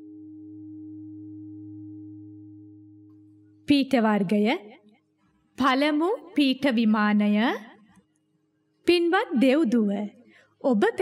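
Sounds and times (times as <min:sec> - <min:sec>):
low ringing drone: 0:00.0 - 0:03.6.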